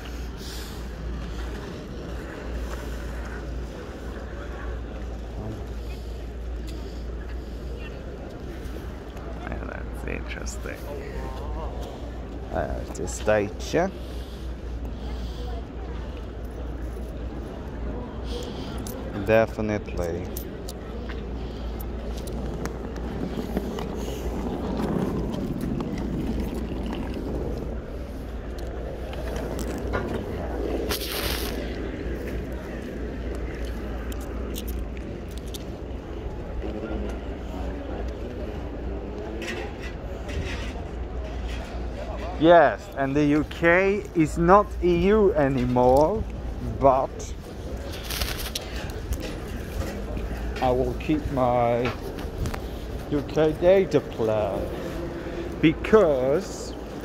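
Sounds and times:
city background hum: 0.0s - 57.0s
wind buffeting microphone: 20.5s - 38.9s
suitcase wheels rolling over paving: 22.0s - 34.5s.

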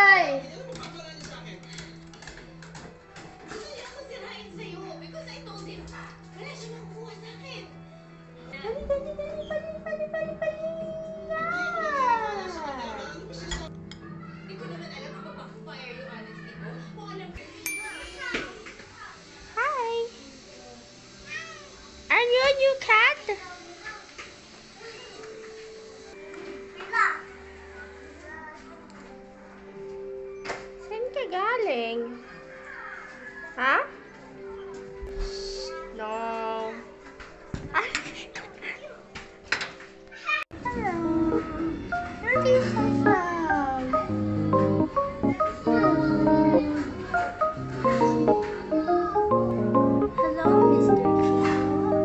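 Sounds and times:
background music: 0.0s - 18.6s, 25.5s - 52.0s.

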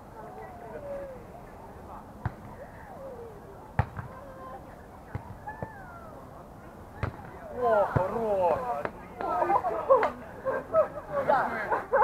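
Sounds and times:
distant voices: 0.0s - 11.3s
volleyball slaps: 3.8s - 4.2s, 7.0s - 8.2s.

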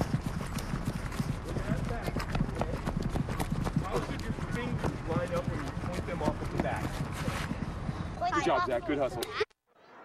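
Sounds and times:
running footsteps: 0.0s - 9.1s.

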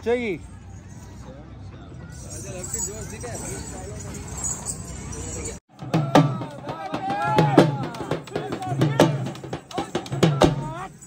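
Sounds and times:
dhol drumming: 5.7s - 11.0s.

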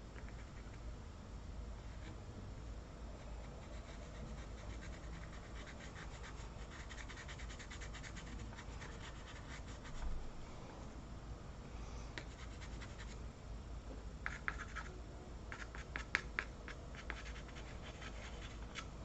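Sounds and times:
pencil scratching on paper: 3.5s - 10.0s, 15.5s - 18.9s.

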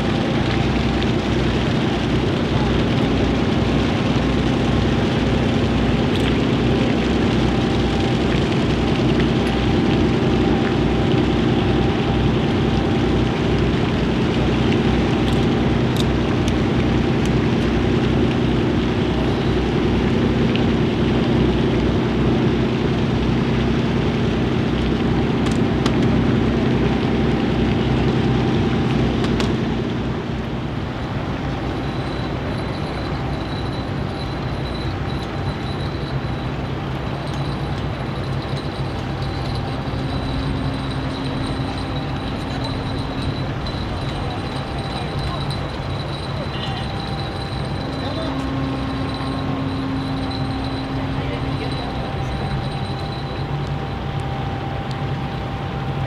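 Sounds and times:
steamship machinery humming: 0.0s - 56.0s.

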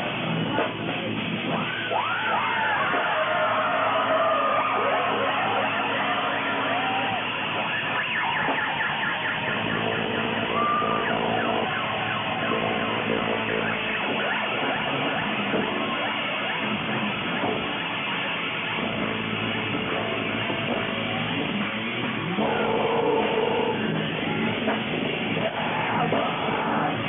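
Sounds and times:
sustained amplifier drone: 0.0s - 27.0s
siren-like feedback squeals: 1.6s - 21.4s, 22.2s - 27.0s.

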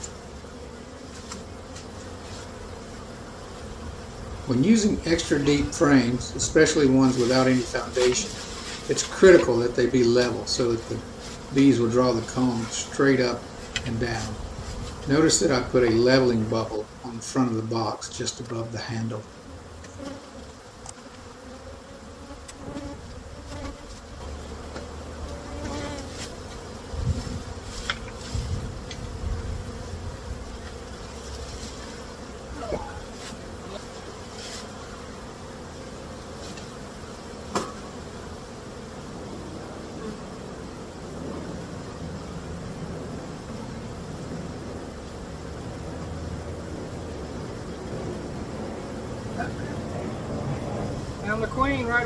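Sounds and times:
honeybees buzzing: 0.0s - 52.0s.

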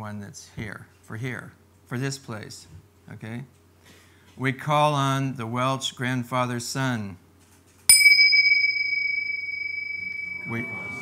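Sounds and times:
cymbals clash and ring: 7.9s - 11.0s.

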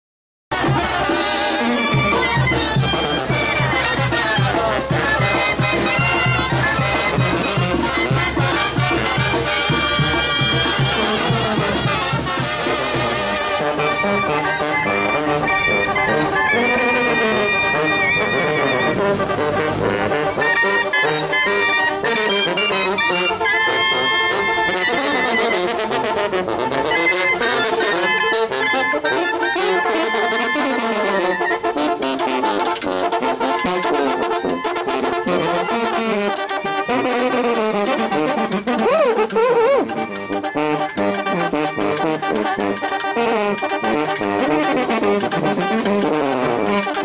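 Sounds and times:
brass band playing: 0.5s - 47.0s.

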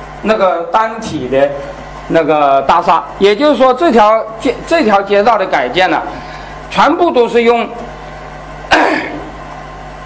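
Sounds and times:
low sound system hum: 0.0s - 10.0s
man coughing: 8.7s - 9.4s.

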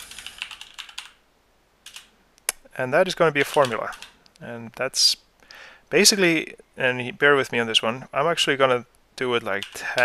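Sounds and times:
computer keyboard typing: 0.0s - 1.2s, 1.8s - 2.1s, 3.4s - 4.2s, 9.6s - 10.0s.

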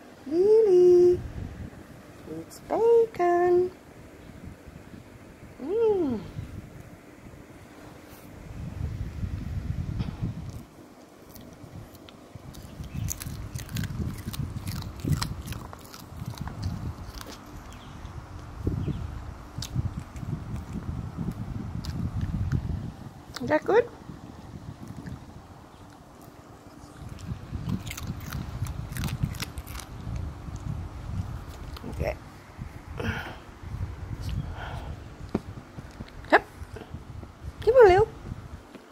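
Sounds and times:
low rumbling rustle: 6.2s - 10.8s, 11.4s - 38.7s
dog chewing crunchy bacon: 10.4s - 18.6s, 19.6s - 23.5s, 24.8s - 32.0s.

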